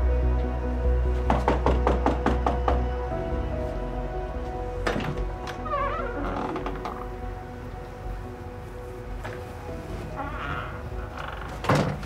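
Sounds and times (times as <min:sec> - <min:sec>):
soft background music: 0:00.0 - 0:12.0
door unlatched and opened: 0:04.8 - 0:07.0.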